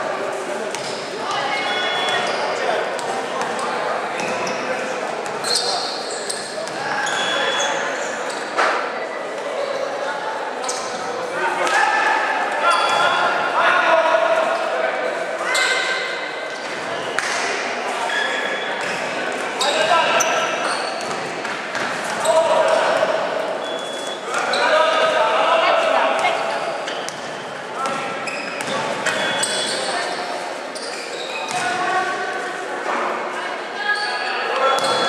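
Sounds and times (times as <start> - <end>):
sneakers squeaking on floor: 0.7 - 3.6, 4.2 - 8.6, 10.6 - 11.1, 12.6 - 13.4, 15.5 - 17.4, 18.0 - 25.2, 26.1 - 32.0, 33.8 - 35.0
basketball bouncing on court: 31.5 - 31.7.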